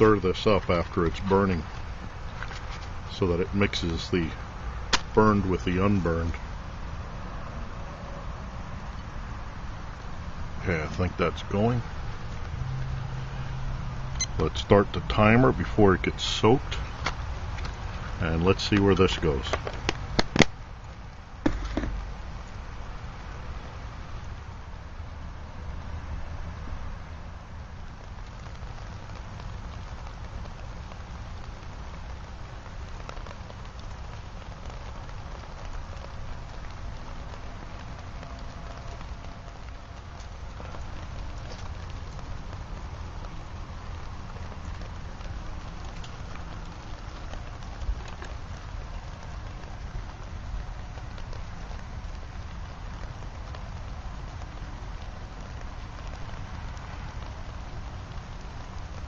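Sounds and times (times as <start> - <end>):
steady rain patter: 0.0 - 59.0.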